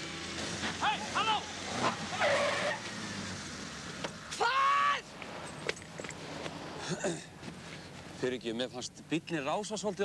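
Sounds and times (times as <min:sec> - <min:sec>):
car tyres screeching: 0:00.3 - 0:04.9.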